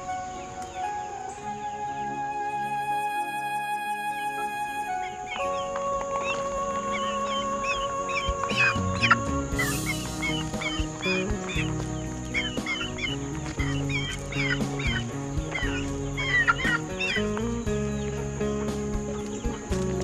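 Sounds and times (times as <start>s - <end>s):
background music with held chords: 0.0s - 20.0s
chickens clucking: 5.2s - 20.0s.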